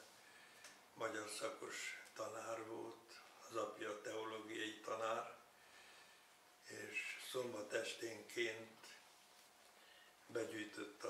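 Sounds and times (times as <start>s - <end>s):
elderly man talking: 1.0s - 5.5s, 6.6s - 9.1s, 10.3s - 11.0s.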